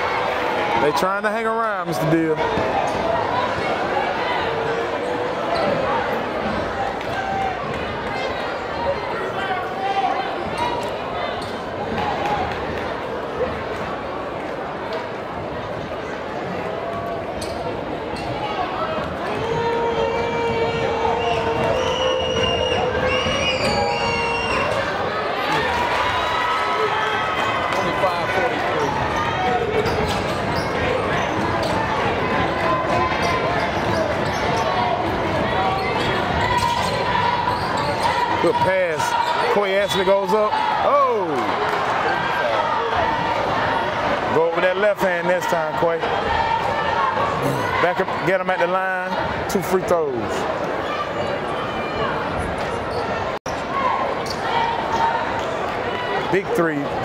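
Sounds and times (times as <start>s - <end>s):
crowd shouting and cheering: 0.0s - 57.0s.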